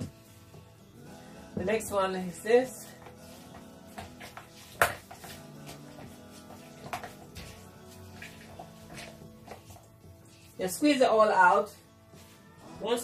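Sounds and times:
quiet background music: 0.0 - 13.0.

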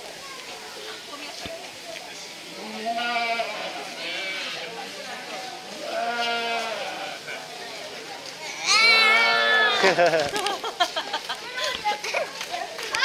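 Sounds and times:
goats bleating: 2.6 - 4.7, 5.8 - 7.4, 8.6 - 10.0.

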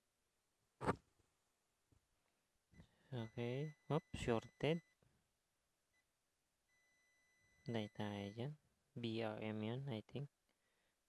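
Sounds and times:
multimeter continuity beep: 3.2 - 5.0.

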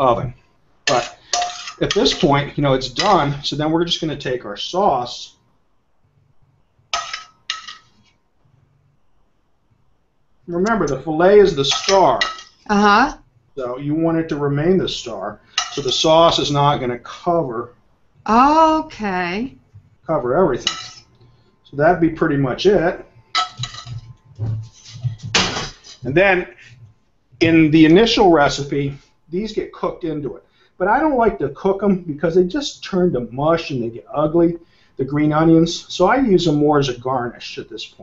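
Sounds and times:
metal spoon clinking on pan: 0.9 - 2.4, 7.0 - 7.9, 11.6 - 12.6, 15.5 - 16.0, 20.6 - 21.1, 23.4 - 24.1.

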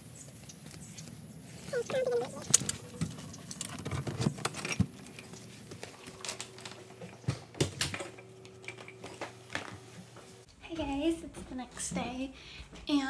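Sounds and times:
footsteps in entryway: 8.8 - 13.0.

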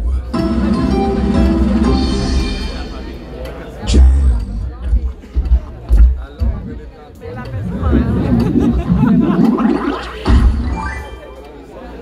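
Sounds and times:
audience chatter: 0.0 - 12.0
voices talking: 6.4 - 10.5.

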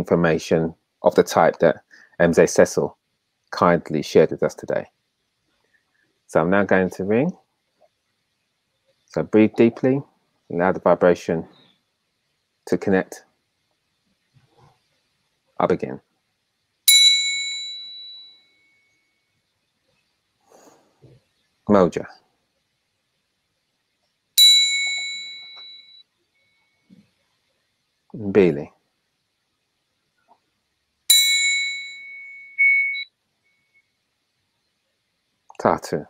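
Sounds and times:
metal triangle ringing: 16.9 - 18.8, 24.4 - 26.0, 31.1 - 33.0.

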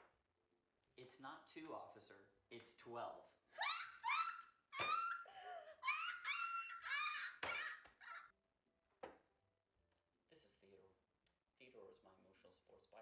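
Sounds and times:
woman laughing: 3.6 - 8.3.

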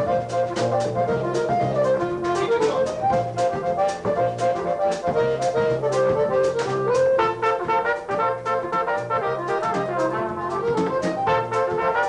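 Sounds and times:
accordion accompaniment: 0.0 - 12.0
flugelhorn melody: 0.0 - 12.0
steady cymbal beat: 0.0 - 12.0.

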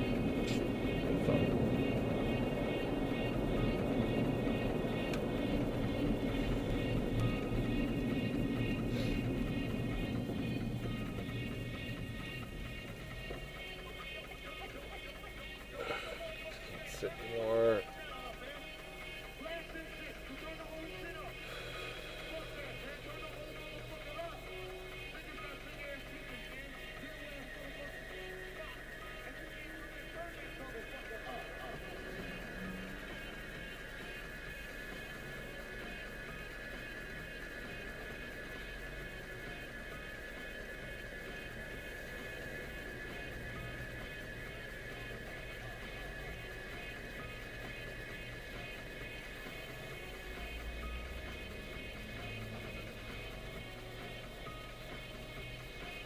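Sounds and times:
road and engine rumble: 0.0 - 56.0.

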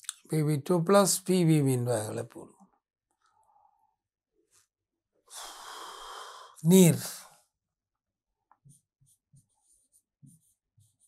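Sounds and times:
marker pen scratching on whiteboard: 8.5 - 11.0.

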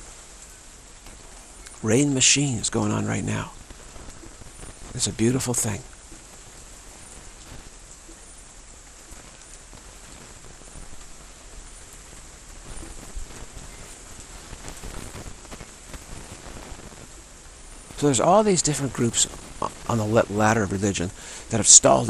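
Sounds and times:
raindrop ticks: 0.0 - 22.0
steady rain hiss: 0.0 - 22.0.

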